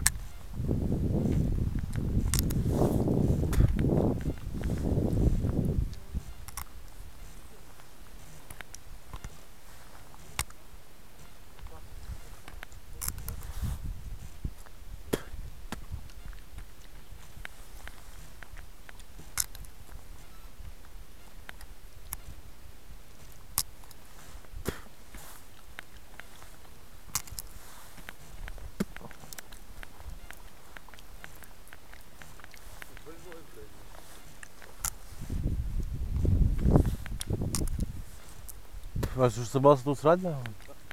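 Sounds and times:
steady low rumble: 0:00.0 - 0:39.5
sharp clicks and ticks: 0:01.7 - 0:02.6, 0:03.5 - 0:06.9, 0:08.4 - 0:09.3, 0:10.3 - 0:10.6, 0:14.6 - 0:20.0, 0:20.8 - 0:22.4, 0:27.1 - 0:33.6, 0:34.3 - 0:35.1, 0:35.8 - 0:40.9.

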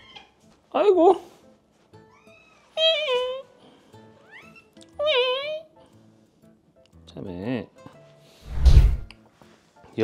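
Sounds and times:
cat meowing: 0:00.0 - 0:00.4, 0:02.1 - 0:03.4.

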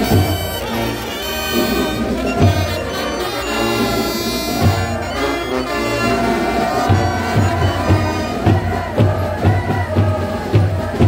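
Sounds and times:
brass band playing: 0:00.0 - 0:11.0.

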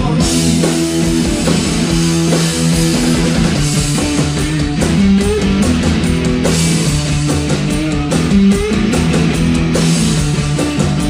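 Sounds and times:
drum kit: 0:00.0 - 0:11.0
electric guitar riff: 0:00.0 - 0:11.0.

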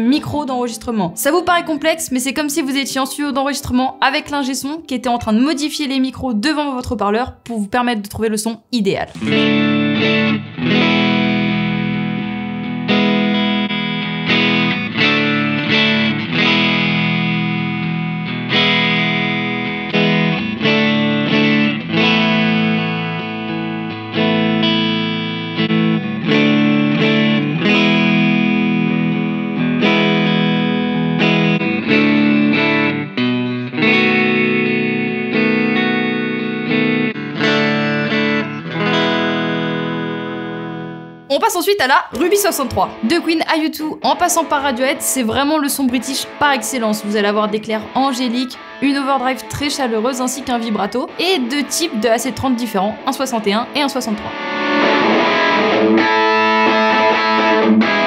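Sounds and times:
electric guitar chords with reverb: 0:09.1 - 0:41.3, 0:42.1 - 0:58.0.

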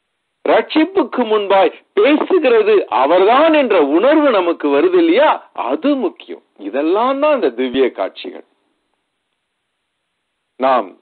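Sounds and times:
man preaching: 0:00.4 - 0:08.4, 0:10.6 - 0:11.0.

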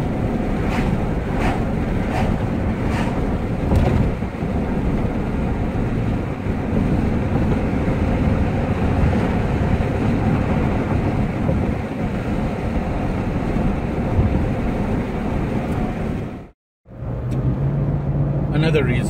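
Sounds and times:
vehicle cabin road rumble: 0:00.0 - 0:19.0.

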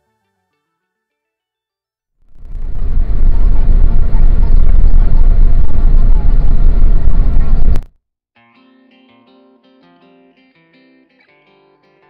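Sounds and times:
distorted vehicle engine rumble: 0:02.3 - 0:07.9
road noise: 0:02.3 - 0:07.9.

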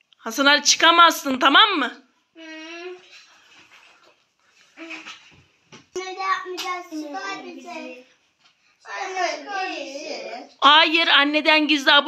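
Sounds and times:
young child vocalising: 0:02.4 - 0:03.1.

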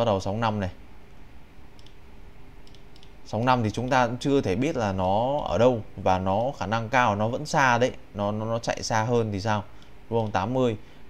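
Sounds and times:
faint steady hum: 0:00.0 - 0:11.0
computer mouse clicks: 0:01.1 - 0:02.0, 0:02.6 - 0:03.2.

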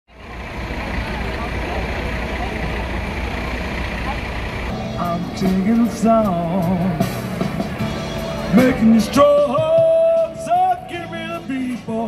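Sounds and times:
bus engine idling: 0:00.1 - 0:12.0
people's voices: 0:00.1 - 0:12.0.

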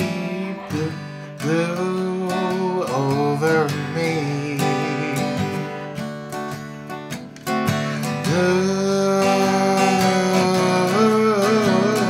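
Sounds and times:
man singing: 0:00.0 - 0:06.1, 0:07.9 - 0:12.0
acoustic guitar strumming: 0:00.0 - 0:12.0.

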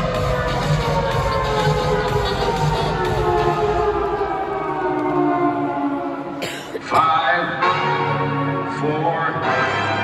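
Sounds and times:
siren winding down: 0:00.6 - 0:06.3.

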